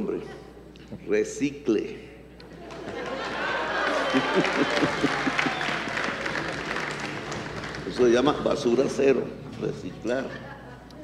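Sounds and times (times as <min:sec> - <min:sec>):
audience clapping and cheering: 0:02.7 - 0:08.3.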